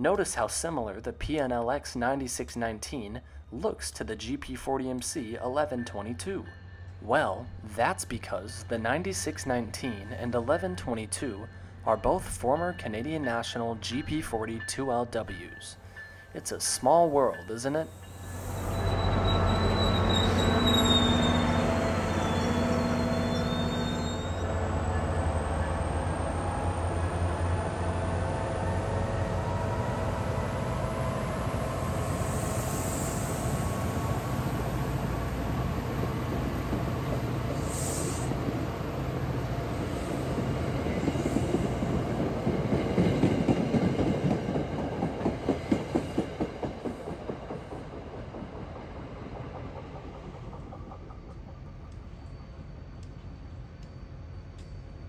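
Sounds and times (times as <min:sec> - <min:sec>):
train wheels clicking over rail joints: 0:40.4 - 0:55.0.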